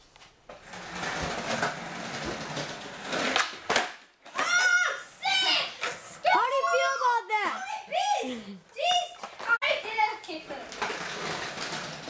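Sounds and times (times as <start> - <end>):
skateboard wheels rolling on concrete: 0.0 - 12.0.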